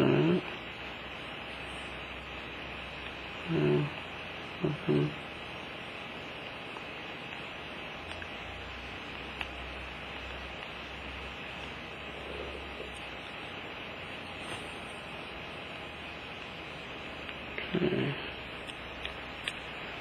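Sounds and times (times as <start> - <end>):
faint low hum: 0.0 - 20.0
steady hiss: 0.0 - 20.0.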